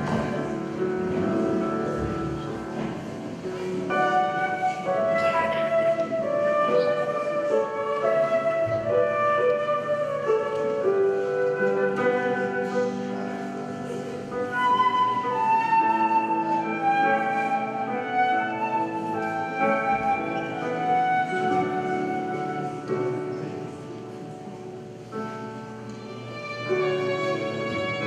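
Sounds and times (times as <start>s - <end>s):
flute melody: 0.0s - 28.0s
violin: 0.0s - 28.0s.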